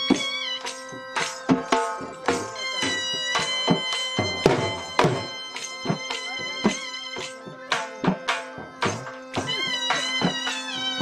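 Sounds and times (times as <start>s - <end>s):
high gliding melody line: 0.0s - 11.0s.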